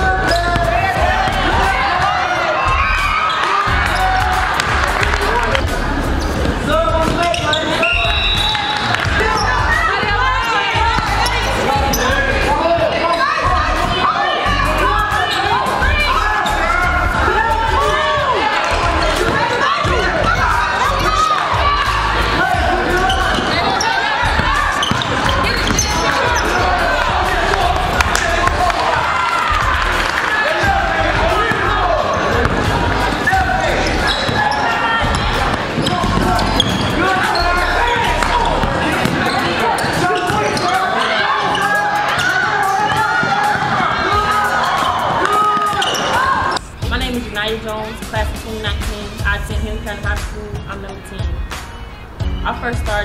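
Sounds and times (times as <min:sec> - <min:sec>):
people calling out: 0:00.0 - 0:05.6, 0:07.0 - 0:46.8
players and spectators chattering: 0:00.0 - 0:53.0.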